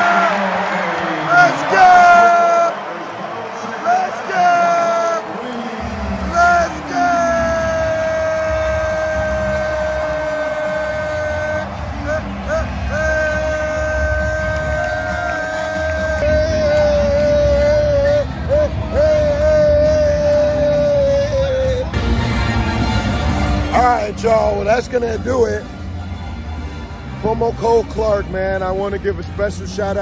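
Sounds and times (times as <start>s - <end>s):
arena crowd noise: 0.0s - 30.0s
man yelling: 1.3s - 2.8s, 3.8s - 5.3s, 6.3s - 21.9s.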